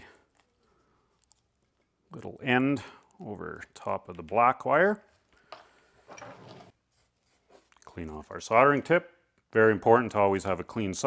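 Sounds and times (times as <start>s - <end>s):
soft scraping rustle: 5.0s - 8.4s.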